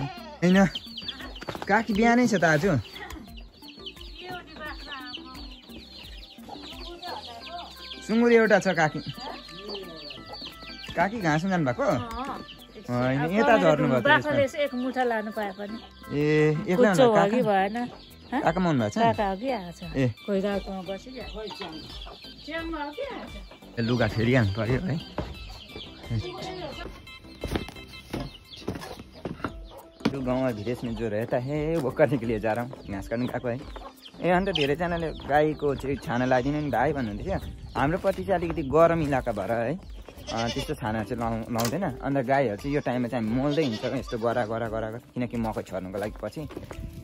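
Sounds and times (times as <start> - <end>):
chickens clucking: 0.0 - 47.0.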